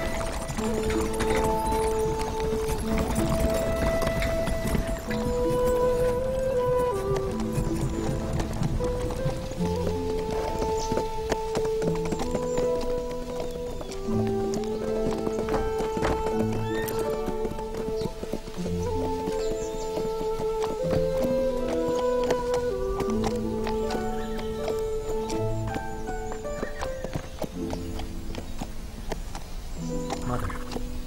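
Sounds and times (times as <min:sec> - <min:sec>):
horse whinnying: 0:00.0 - 0:27.3, 0:30.0 - 0:31.0
background music with held notes: 0:00.0 - 0:31.0
horse hooves clip-clopping: 0:00.0 - 0:31.0.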